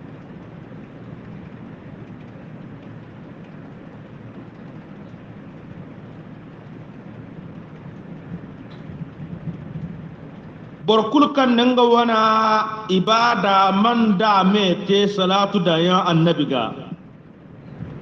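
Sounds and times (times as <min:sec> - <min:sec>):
faint crackles: 0:00.0 - 0:10.9
steady rushing noise: 0:00.0 - 0:12.7, 0:16.4 - 0:18.0.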